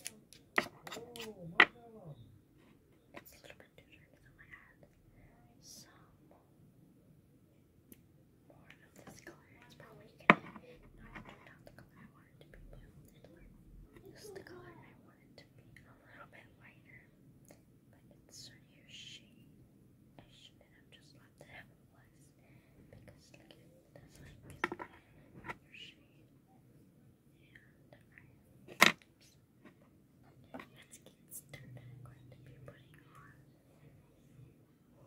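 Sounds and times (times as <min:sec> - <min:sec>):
makeup handling noises: 0:00.0 - 0:01.8, 0:24.3 - 0:25.6
soft whispering: 0:00.0 - 0:06.5, 0:08.4 - 0:26.5, 0:27.3 - 0:35.0.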